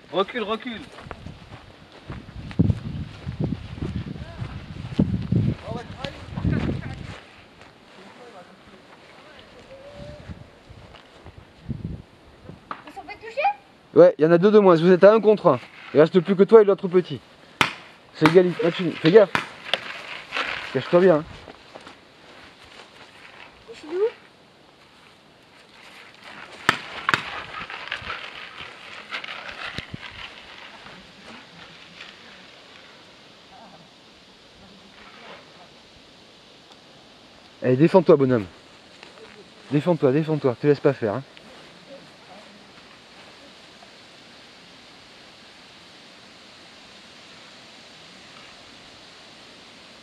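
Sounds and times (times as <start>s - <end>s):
outdoor background hiss: 0.0s - 50.0s
paintball markers firing pops: 17.6s - 18.4s.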